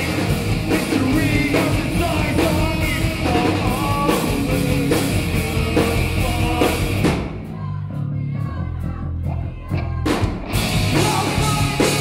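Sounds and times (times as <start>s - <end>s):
live rock band playing: 0.0s - 7.6s, 8.7s - 12.0s.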